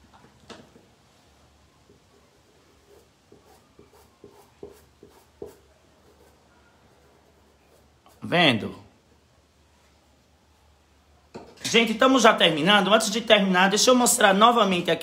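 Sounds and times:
paintbrush scratching on cloth: 2.1s - 8.4s.

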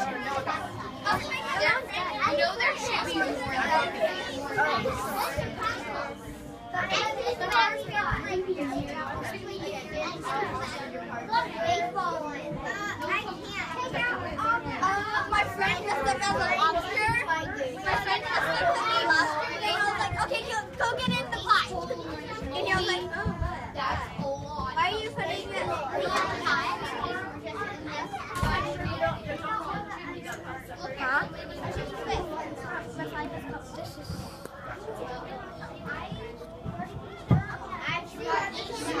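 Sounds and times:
children talking: 0.0s - 39.0s.

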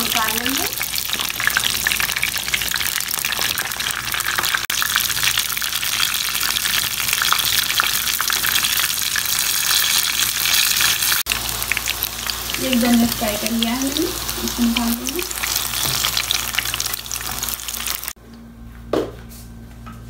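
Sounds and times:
eggplants frying in hot oil: 0.0s - 18.2s.

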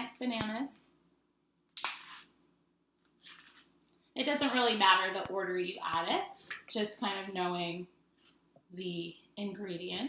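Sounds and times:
banana stem snapping: 1.8s - 2.0s
banana peel tearing: 1.8s - 2.3s.

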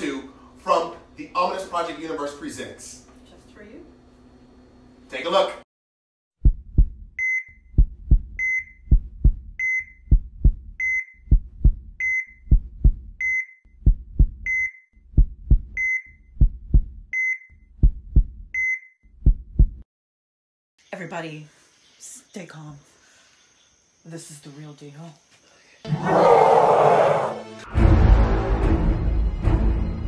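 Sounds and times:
heartbeat double thump: 6.4s - 19.8s
heart monitor high beep: 7.2s - 19.0s.

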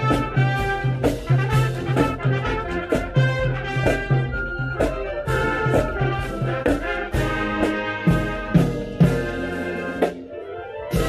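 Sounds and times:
marching band playing: 0.0s - 11.0s.

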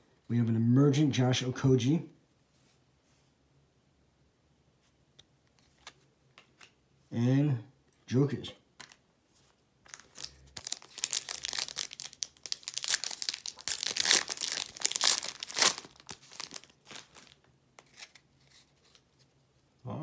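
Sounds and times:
foil pack tearing and crinkling: 9.9s - 17.4s.

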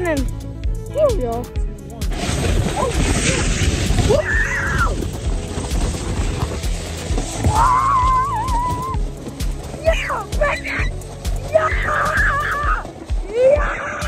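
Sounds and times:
rushing hiss of sliding: 2.1s - 8.9s
people screaming: 2.7s - 5.0s, 7.4s - 9.0s, 11.5s - 14.0s.

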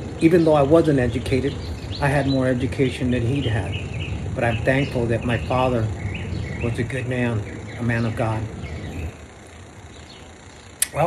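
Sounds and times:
sharp click: 10.8s - 11.0s.

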